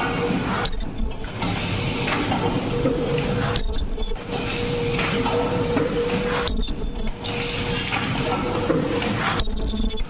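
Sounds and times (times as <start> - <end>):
mid-pitched machine whine: 0.0 - 8.4, 9.2 - 10.0.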